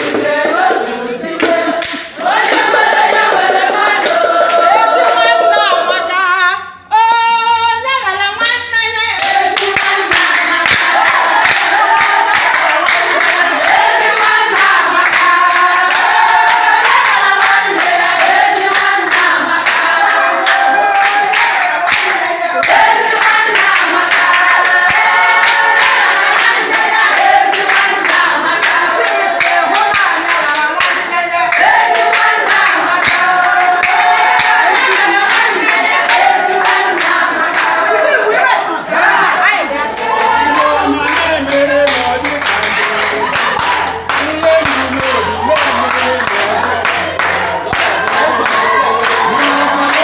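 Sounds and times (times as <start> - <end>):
rhythmic hand-clapping: 0.0 - 6.2, 8.4 - 50.0
women singing together: 0.0 - 50.0
single voice singing: 26.6 - 50.0.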